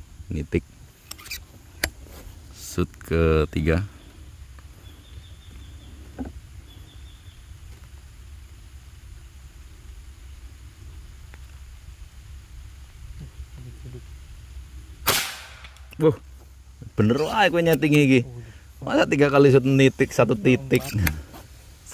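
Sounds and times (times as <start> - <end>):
low steady background noise: 0.0 - 21.9
air rifle shot: 15.0 - 15.8.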